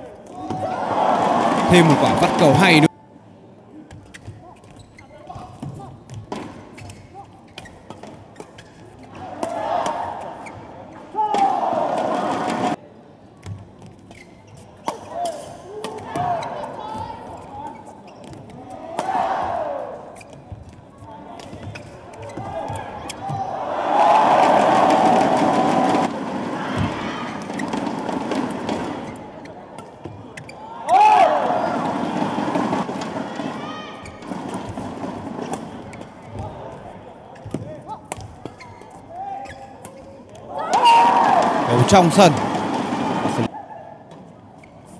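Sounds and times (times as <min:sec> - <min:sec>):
crowd cheering and shouting: 0:00.4 - 0:02.9, 0:11.1 - 0:12.8, 0:22.6 - 0:27.6, 0:30.8 - 0:34.1, 0:40.5 - 0:43.5.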